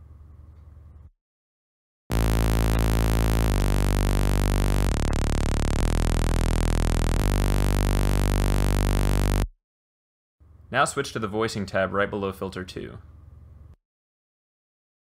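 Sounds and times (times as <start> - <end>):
synth bass notes: 2.1 - 9.5.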